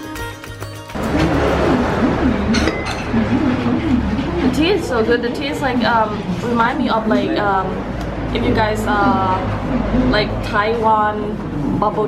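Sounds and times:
background music: 0.0s - 6.2s
teacups and saucers clinking: 2.6s - 3.1s
person speaking: 4.5s - 11.3s.

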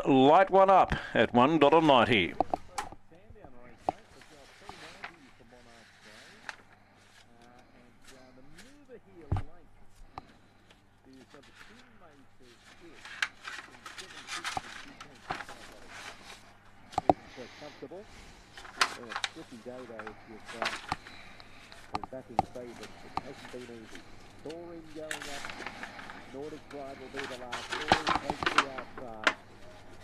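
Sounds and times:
faint voices talking: 1.2s - 30.0s.

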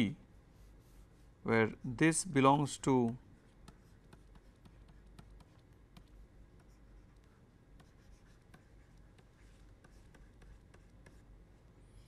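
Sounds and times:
low steady hum: 0.0s - 12.0s
stylus tapping on pen tablet: 3.0s - 11.2s.

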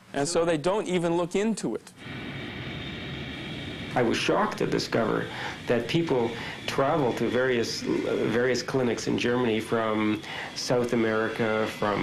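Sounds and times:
jet engines rushing with whine: 2.0s - 12.0s.

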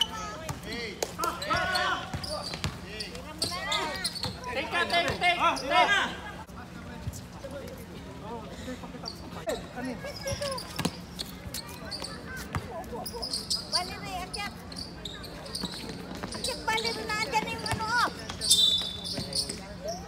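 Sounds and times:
players calling out: 0.0s - 6.5s
basketball bouncing on hard court: 2.1s - 2.8s, 10.3s - 11.0s.

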